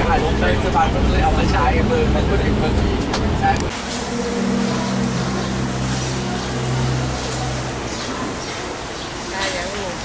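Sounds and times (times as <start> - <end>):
steady low hum: 0.0 - 9.3
bus engine and road rumble: 0.0 - 10.0.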